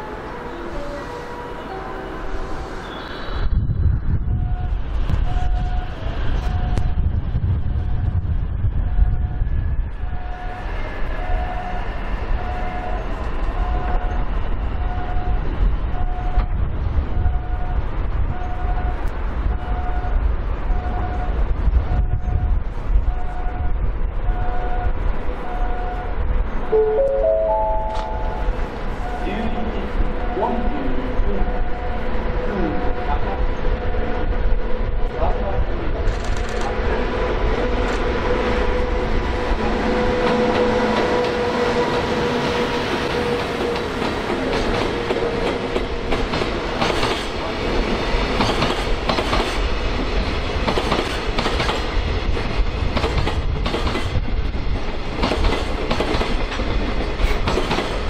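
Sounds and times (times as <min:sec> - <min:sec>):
low rumble of rail traffic: 0:00.0 - 0:58.0
short electronic beep: 0:26.7 - 0:29.4.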